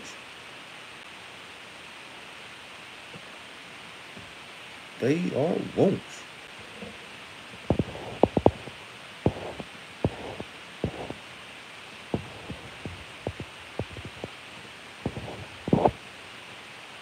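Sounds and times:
faint steady hiss: 0:00.0 - 0:17.0.

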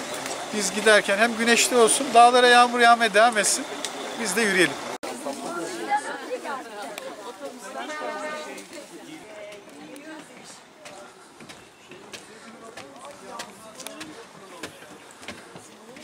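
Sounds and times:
indistinct chatter: 0:00.0 - 0:16.0
footsteps on wooden steps: 0:08.5 - 0:16.0.

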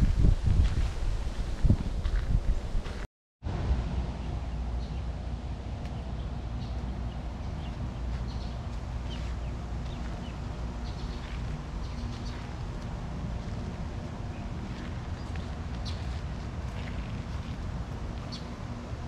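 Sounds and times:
wind rumble on microphone: 0:00.0 - 0:19.0
faint hum: 0:03.5 - 0:19.0.

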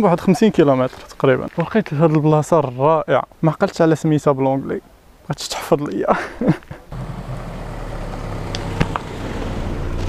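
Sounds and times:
car engine running: 0:06.9 - 0:10.0.

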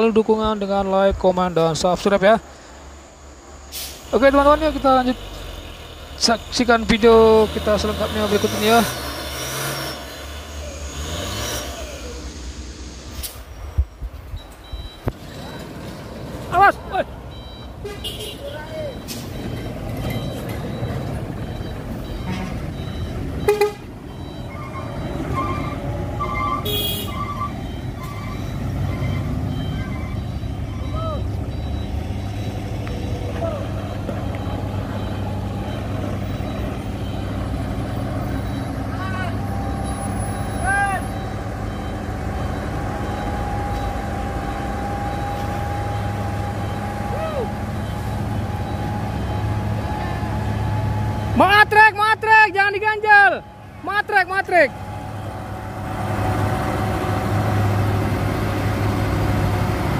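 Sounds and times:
diesel truck engine rumbling: 0:00.0 - 0:59.9.

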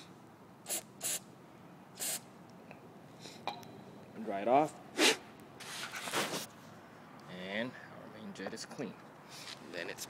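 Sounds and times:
aerosol spray hissing: 0:00.7 - 0:01.2, 0:02.0 - 0:02.2.

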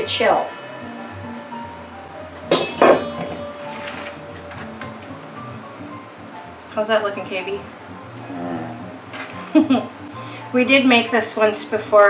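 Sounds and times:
soft background music: 0:00.0 - 0:12.0
metal mixing bowl clanks: 0:02.5 - 0:04.9.

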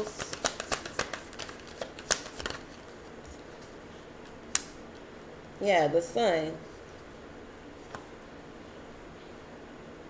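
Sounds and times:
cards shuffled snapping: 0:00.0 - 0:03.7.

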